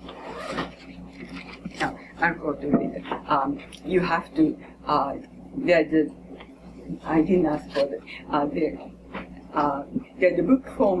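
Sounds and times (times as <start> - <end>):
paper pages rustling: 0.5 - 1.9.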